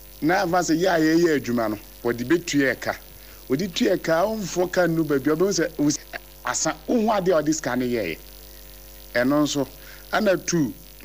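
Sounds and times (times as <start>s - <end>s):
low electrical mains hum: 0.0s - 11.0s
man speaking: 0.2s - 8.2s, 9.1s - 10.8s.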